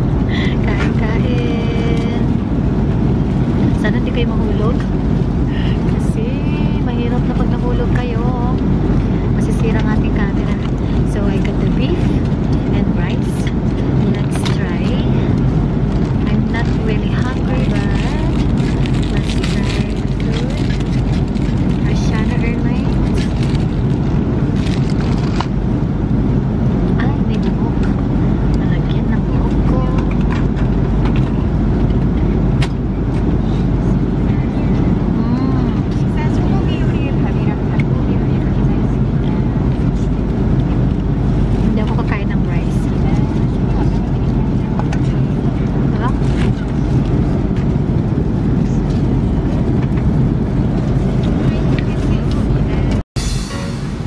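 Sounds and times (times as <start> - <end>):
airliner cabin engine rumble: 0.0 - 54.0.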